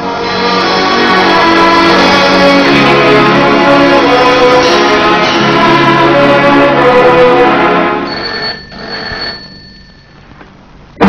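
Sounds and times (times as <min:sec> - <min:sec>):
pendulum clock chiming: 0:08.1 - 0:10.2.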